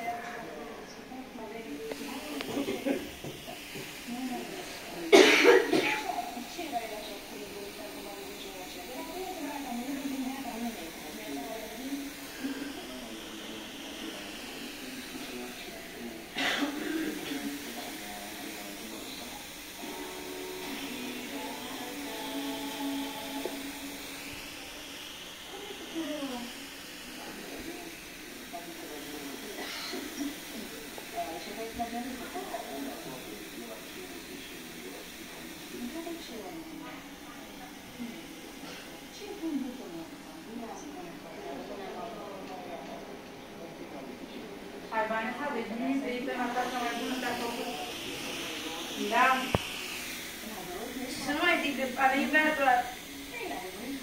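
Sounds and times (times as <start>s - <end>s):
loud noisy bursts: 1.8s - 40.6s, 46.1s - 54.0s.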